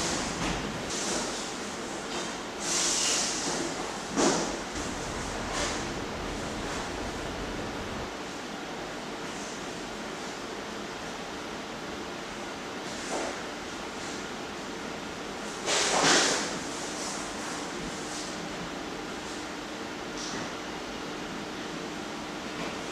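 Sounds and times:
room noise hiss: 0.0s - 22.9s
faint steady hum: 4.6s - 8.1s
rushing swell of noise: 4.6s - 8.1s.

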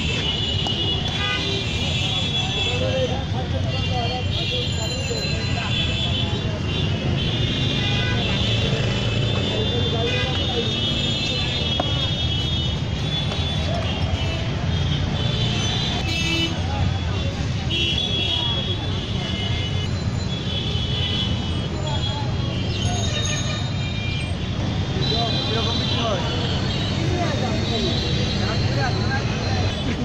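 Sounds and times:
car horns: 0.0s - 3.1s, 3.8s - 16.6s
traffic rumble: 0.0s - 30.0s
voices of passers-by: 0.0s - 30.0s.

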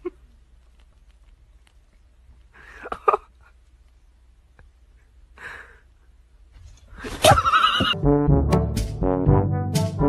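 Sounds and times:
wavering whinny-like cry: 7.2s - 8.0s.

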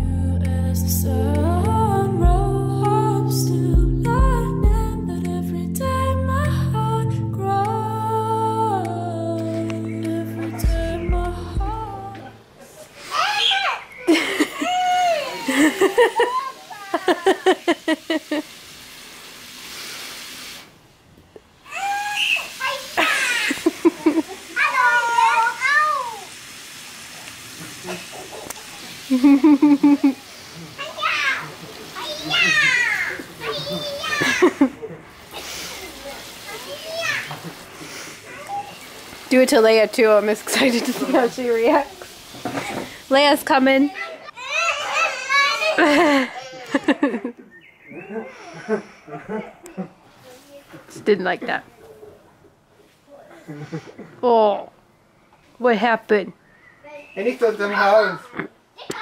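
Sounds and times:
garden hose spray hissing: 13.0s - 20.9s, 21.7s - 44.0s
girl squealing: 13.2s - 15.6s, 21.7s - 23.6s
girl laughing: 14.0s - 18.4s, 23.0s - 24.4s, 29.1s - 30.2s, 32.2s - 35.0s, 45.7s - 50.0s.

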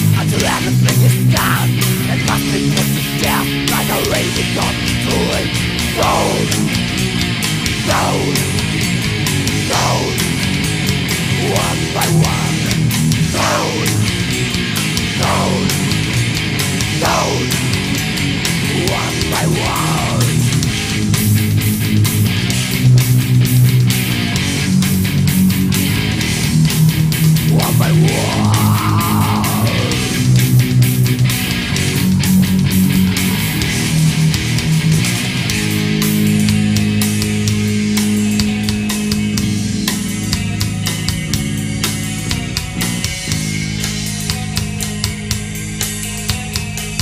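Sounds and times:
distorted electric guitar riffing: 0.0s - 47.0s
drums: 0.0s - 47.0s.

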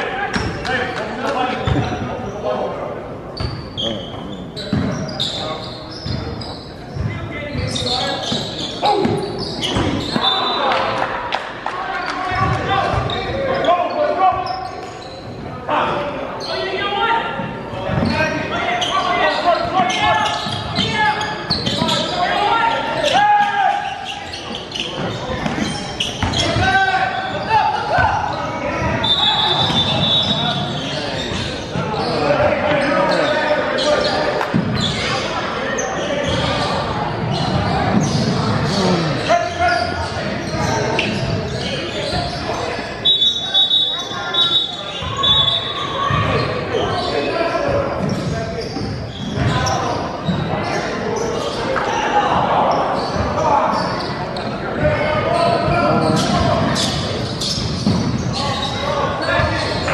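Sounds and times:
echoing indistinct voices: 0.0s - 59.9s.

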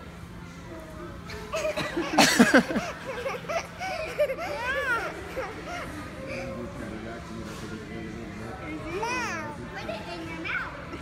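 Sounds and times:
restaurant background hum: 0.0s - 11.0s.

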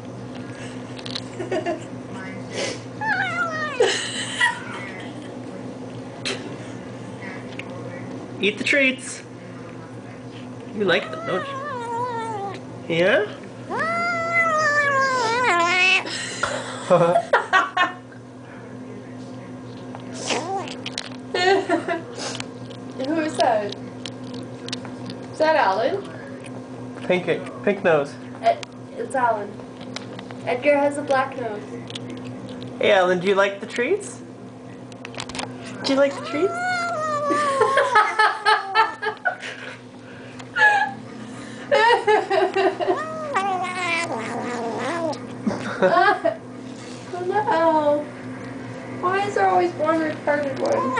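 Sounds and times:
kitten squealing: 3.0s - 4.0s, 10.9s - 12.6s, 13.7s - 16.1s, 20.2s - 20.8s, 35.9s - 38.1s, 42.9s - 45.2s, 50.7s - 50.9s.

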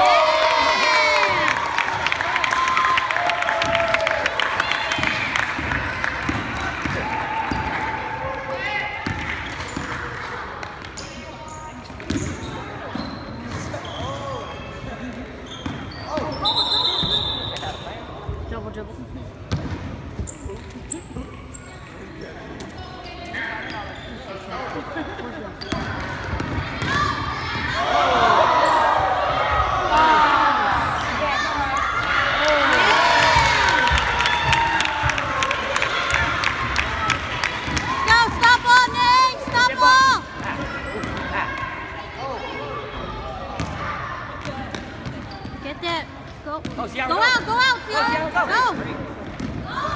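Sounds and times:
spectators shouting and cheering: 0.0s - 10.6s, 26.4s - 44.8s
basketball bouncing on wooden court: 5.0s - 7.9s, 43.6s - 43.8s
shoes squeaking on court: 10.9s - 14.6s, 15.4s - 17.9s, 18.8s - 24.5s, 44.5s - 46.9s.

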